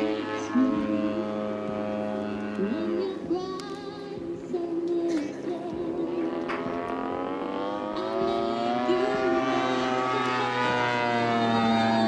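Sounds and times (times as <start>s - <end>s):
model airplane engine: 0.0s - 12.0s.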